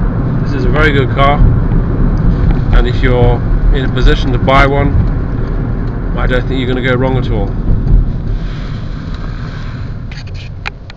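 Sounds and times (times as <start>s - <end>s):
faint car engine: 0.0s - 10.9s
tyre and road noise in cabin: 0.0s - 10.9s.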